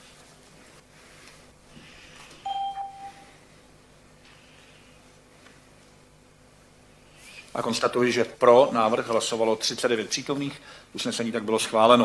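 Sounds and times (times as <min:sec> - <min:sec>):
electronic chime tone: 0:02.4 - 0:03.3.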